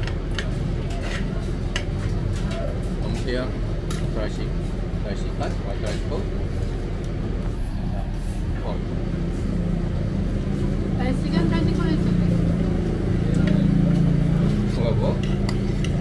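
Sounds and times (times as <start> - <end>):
faint voices talking: 0.3 - 6.5, 9.8 - 16.0
bus engine rumbling: 2.1 - 15.8.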